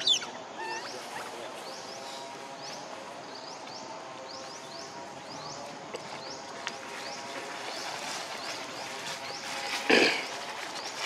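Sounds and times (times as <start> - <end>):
macaque squealing: 0.0 - 1.2
monkeys rustling dry leaves: 6.4 - 11.0.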